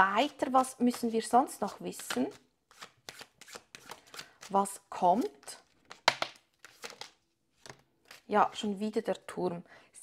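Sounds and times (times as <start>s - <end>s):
cards shuffling: 1.9s - 4.6s, 5.6s - 8.3s
cards snapping: 5.8s - 8.2s.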